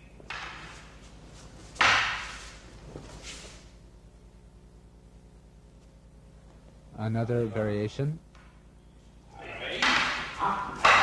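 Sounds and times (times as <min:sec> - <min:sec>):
wooden swords clacking: 0:01.8 - 0:02.6, 0:09.8 - 0:11.0.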